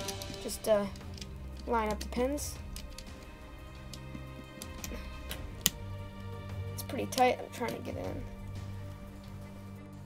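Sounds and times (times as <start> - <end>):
plastic bricks clicking and scraping: 0.0 - 5.8
faint music: 0.0 - 10.0.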